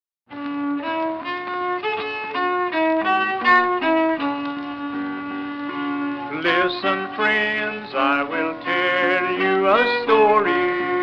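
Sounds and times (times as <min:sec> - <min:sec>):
old-time fiddle melody: 0:00.3 - 0:11.0.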